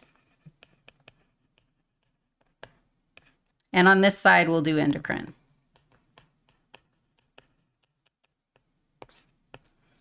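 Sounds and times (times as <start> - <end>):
stylus tapping and scratching on tablet: 0.0 - 4.1, 4.7 - 10.0.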